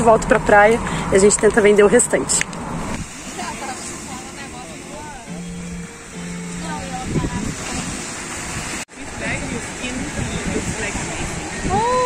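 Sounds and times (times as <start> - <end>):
surf washing on beach: 2.7 - 12.0
held low notes: 2.8 - 9.9
wavering melodic line: 3.1 - 8.8.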